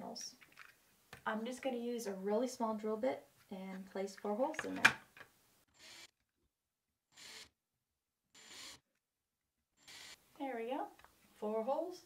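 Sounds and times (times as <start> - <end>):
cordless drill drilling plastic: 5.7 - 6.2, 7.1 - 7.6, 8.4 - 8.9, 9.8 - 10.2.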